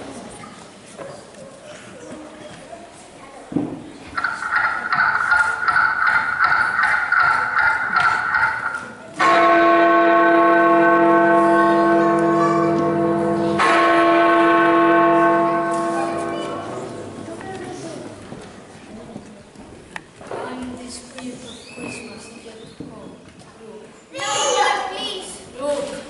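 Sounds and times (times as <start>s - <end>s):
deep church bell strikes: 9.2s - 17.8s.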